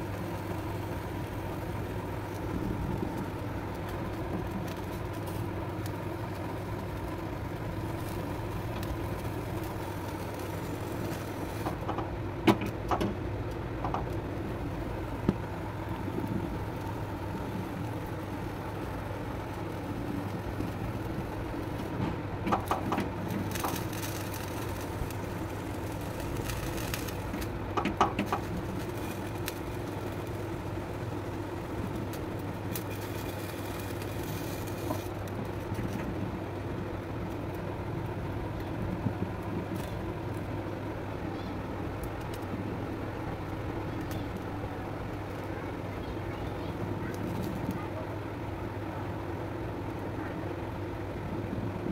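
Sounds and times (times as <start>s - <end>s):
gas flame hum: 0.0s - 51.9s.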